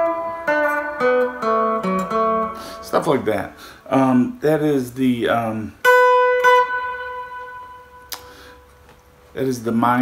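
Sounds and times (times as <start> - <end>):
electric guitar high note: 5.8 - 8.8.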